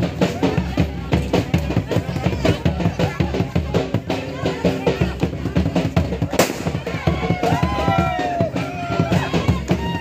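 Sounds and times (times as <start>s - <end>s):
hand-beaten barrel drum: 0.0s - 10.0s.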